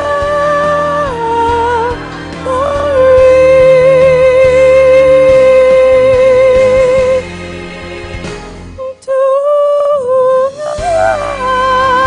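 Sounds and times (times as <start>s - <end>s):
woman singing into microphone: 0.0s - 7.2s, 8.8s - 12.0s.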